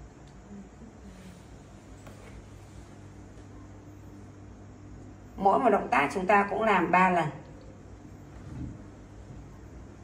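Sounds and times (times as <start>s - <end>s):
low background rumble and hiss: 0.0s - 10.0s.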